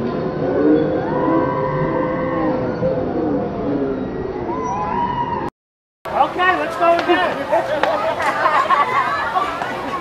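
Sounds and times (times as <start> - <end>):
children chattering: 6.3 - 10.0.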